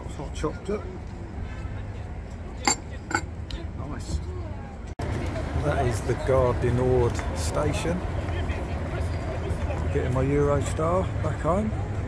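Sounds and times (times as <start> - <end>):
street traffic rumble: 0.0 - 12.0
crockery clinking: 2.6 - 3.3.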